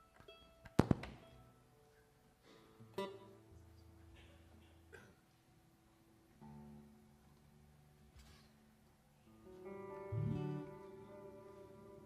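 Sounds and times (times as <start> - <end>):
plucked string notes: 9.3 - 12.0.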